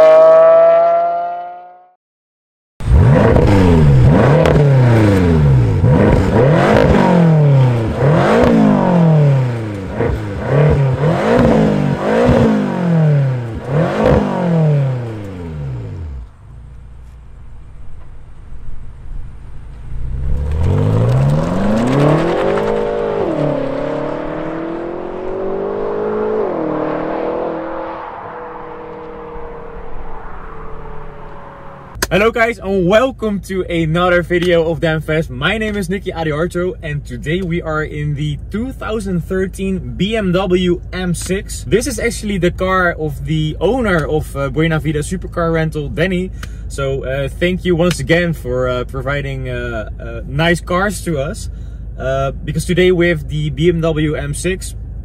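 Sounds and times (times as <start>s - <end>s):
car accelerating hard: 0.0s - 1.8s, 2.8s - 16.3s, 19.8s - 32.0s
car engine revving: 0.0s - 1.9s, 2.8s - 33.0s.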